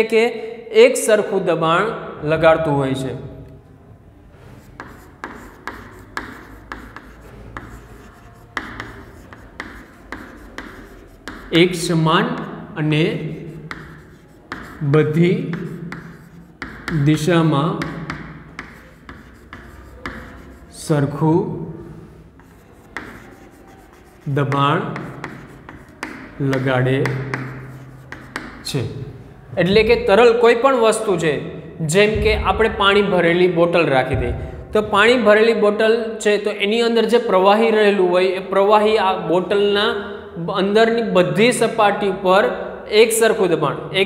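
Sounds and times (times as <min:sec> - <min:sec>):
chalk scratching on a blackboard: 0:04.4 - 0:12.6, 0:13.2 - 0:21.2, 0:21.9 - 0:28.7.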